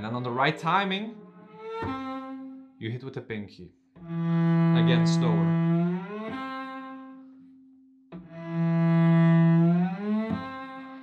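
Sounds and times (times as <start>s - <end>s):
bowed cello sliding notes: 0.0s - 2.8s, 4.0s - 11.0s.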